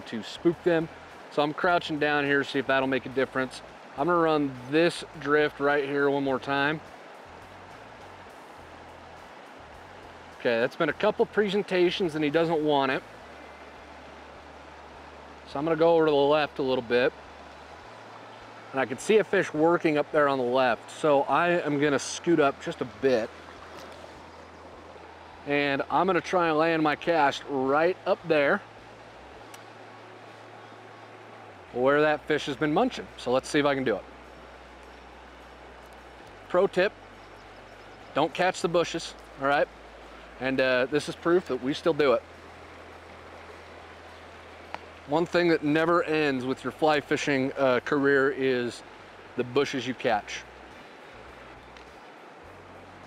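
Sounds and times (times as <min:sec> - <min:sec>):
creek rushing: 0:00.0 - 0:53.0
quiet background music: 0:00.0 - 0:53.0.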